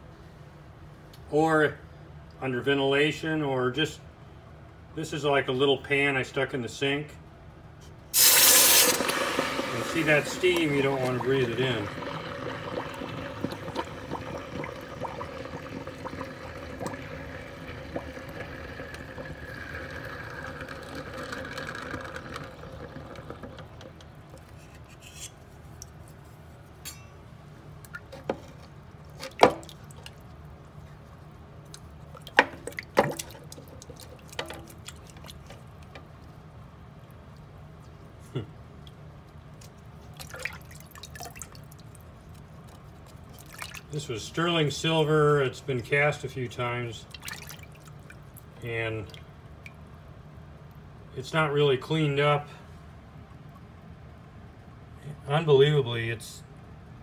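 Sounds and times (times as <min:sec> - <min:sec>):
water bubbling and hissing: 0:08.2 - 0:23.4
water sloshing: 0:27.8 - 0:36.2, 0:39.6 - 0:43.9, 0:47.1 - 0:49.3.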